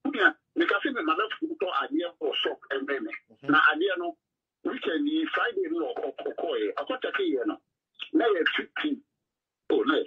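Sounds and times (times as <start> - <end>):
person talking over telephone: 0.1 - 9.1.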